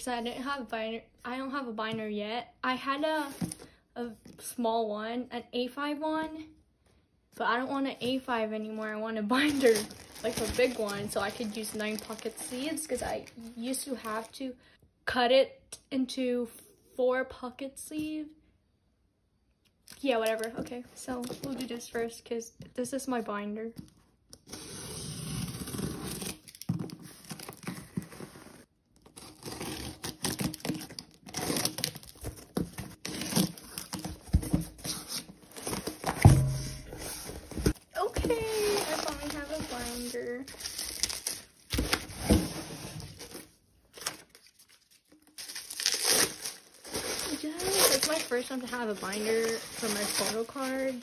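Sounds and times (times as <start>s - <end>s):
bubble wrap crinkling: 9.3s - 14.4s, 25.9s - 51.0s
packing tape tearing: 29.0s - 36.3s, 38.4s - 51.0s
sharp thump: 36.2s - 37.7s.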